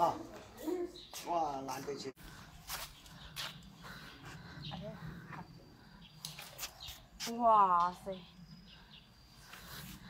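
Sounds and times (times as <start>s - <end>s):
footsteps on concrete: 0.3s - 5.5s.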